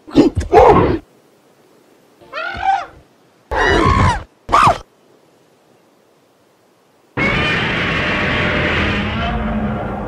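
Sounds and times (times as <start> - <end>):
giant ape creature calls: 7.2 - 10.0.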